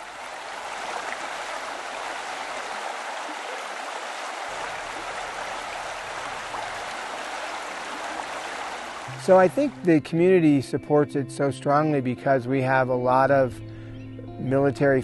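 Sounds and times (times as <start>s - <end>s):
stream water rushing: 0.0s - 9.9s.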